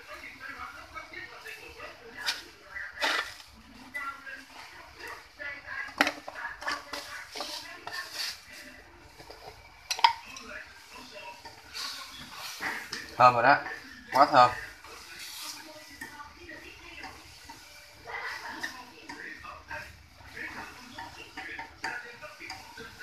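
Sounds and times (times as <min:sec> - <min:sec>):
utensils scraping a metal wok: 0:00.1 - 0:23.0.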